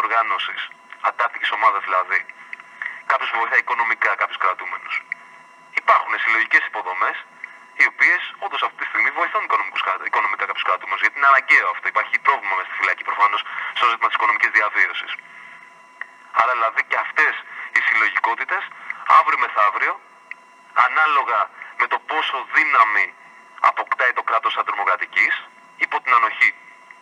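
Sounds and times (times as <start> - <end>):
man talking over telephone: 0.0 - 15.6, 16.2 - 20.1, 20.7 - 26.7.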